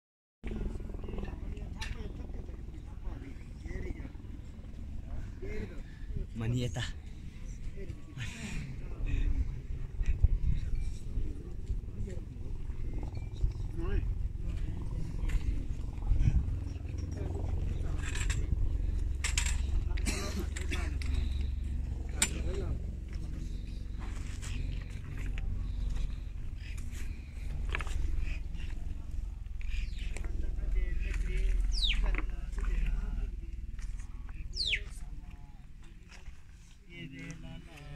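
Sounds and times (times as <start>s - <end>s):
steady low rumble: 0.4s - 37.9s
people's voices: 0.5s - 37.9s
wind buffeting microphone: 8.7s - 32.4s.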